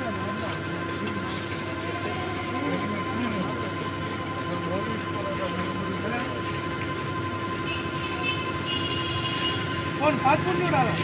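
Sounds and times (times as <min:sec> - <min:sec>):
stirring machine humming: 0:00.0 - 0:11.0.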